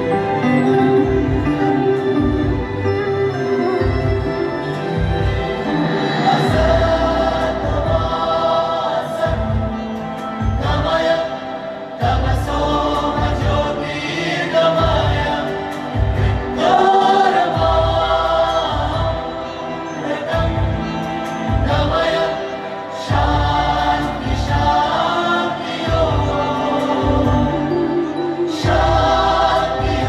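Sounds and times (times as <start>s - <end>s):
wordless choral voices: 0.0s - 30.0s
deep drum beats: 14.8s - 16.8s.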